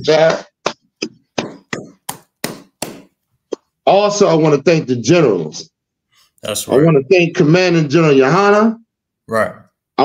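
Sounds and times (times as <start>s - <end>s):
person clapping: 0.2s - 3.1s.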